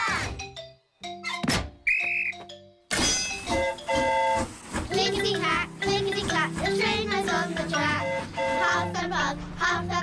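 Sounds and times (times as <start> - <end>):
background music: 0.0 - 10.0
cartoon thunk: 1.3 - 1.8.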